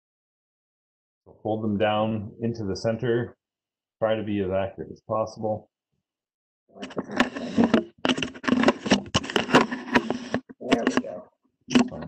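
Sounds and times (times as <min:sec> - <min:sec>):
paper being folded and creased: 0:06.8 - 0:11.0.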